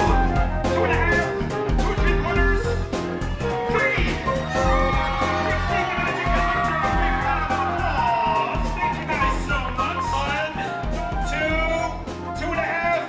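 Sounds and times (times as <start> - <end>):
music playing: 0.0 - 13.0
children cheering and shouting: 3.8 - 10.3.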